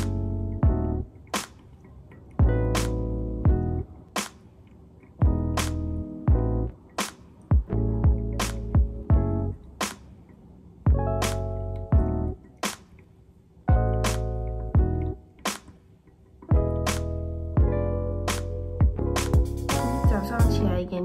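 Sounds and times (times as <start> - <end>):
held keyboard chords: 0.0 - 21.0
kick drum: 0.6 - 0.9, 2.4 - 2.8, 3.4 - 3.8, 5.2 - 5.6, 6.3 - 6.7, 7.5 - 9.4, 10.9 - 11.2, 11.9 - 12.3, 13.7 - 14.0, 14.8 - 15.1, 16.5 - 16.8, 17.6 - 17.9, 18.8 - 20.8
crisp snare: 5.6 - 5.9, 11.2 - 11.4.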